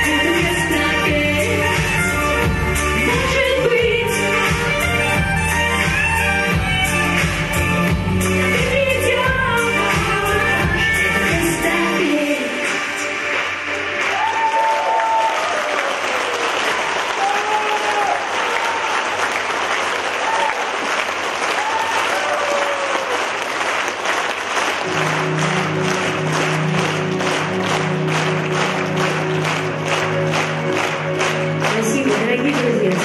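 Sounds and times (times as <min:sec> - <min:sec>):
audience applauding: 0:13.0 - 0:33.0
low keyboard chord: 0:24.8 - 0:33.0.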